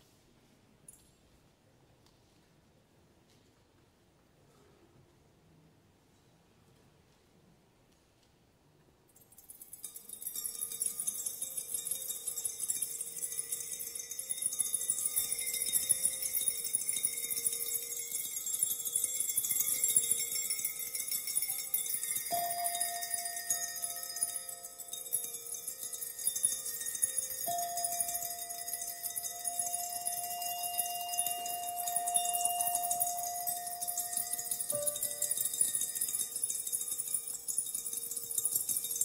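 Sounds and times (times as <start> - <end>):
glasses tapped with mallets: 9.2 - 39.0
held ringing glass tones: 9.2 - 39.0.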